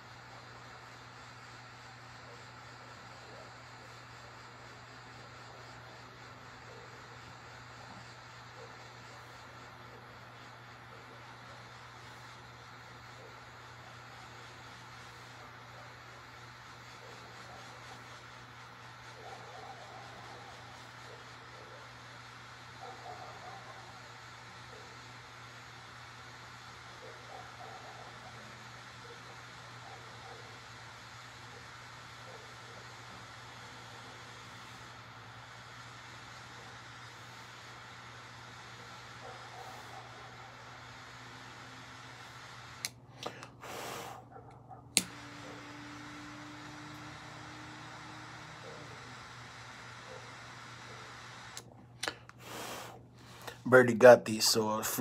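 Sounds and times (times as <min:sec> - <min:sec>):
soft puffs on a cigar: 0:00.0 - 0:55.0
steady low hum: 0:00.0 - 0:55.0
sharp click: 0:44.9 - 0:45.3.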